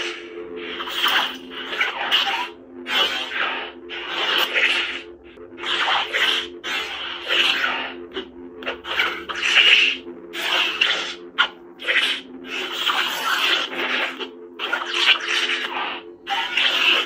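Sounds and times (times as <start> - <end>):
lightsaber hum: 0.0 - 17.0
lightsaber swing whooshes: 0.0 - 17.0.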